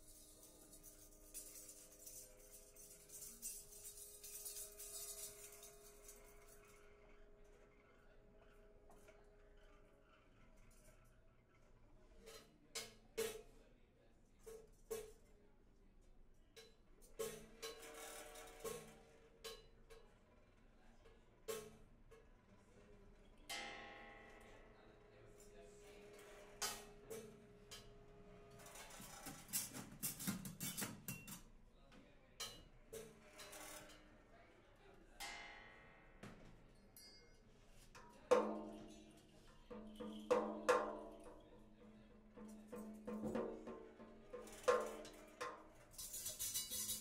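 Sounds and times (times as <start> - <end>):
small percussion strikes ringing: 23.5 - 27.9, 35.2 - 47.0.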